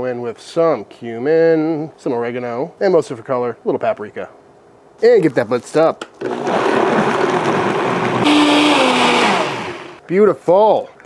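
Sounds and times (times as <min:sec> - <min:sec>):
blender motor running: 0:06.2 - 0:10.0.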